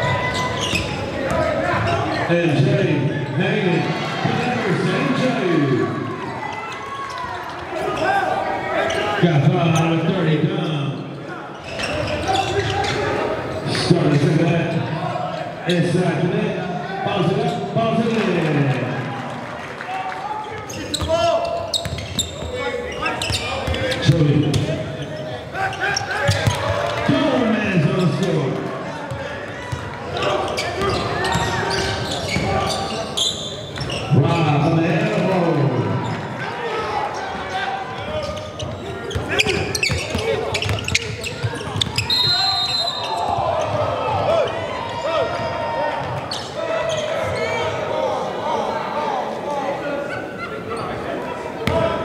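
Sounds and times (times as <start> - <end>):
people shouting and talking: 0.0 - 52.0.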